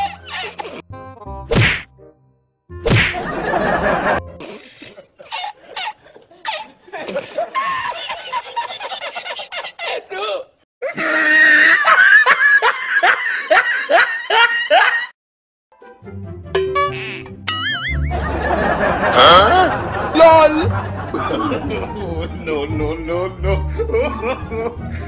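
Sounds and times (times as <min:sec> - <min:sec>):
high-pitched laughter: 0:00.0 - 0:00.8, 0:10.8 - 0:15.1, 0:17.0 - 0:19.8
background music: 0:00.0 - 0:05.3, 0:15.7 - 0:25.0
loud whack: 0:01.5 - 0:01.9, 0:02.8 - 0:03.3.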